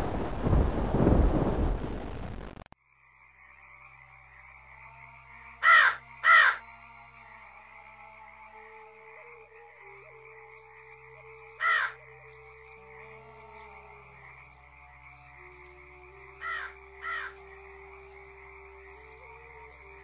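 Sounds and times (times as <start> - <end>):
drone of held tones: 2.8 - 20.0
crow cawing: 5.6 - 6.7, 11.4 - 12.0, 16.3 - 17.4.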